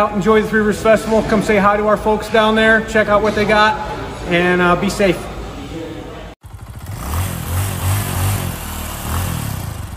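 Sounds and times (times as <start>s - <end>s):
motorcycle engine running: 6.4s - 9.9s.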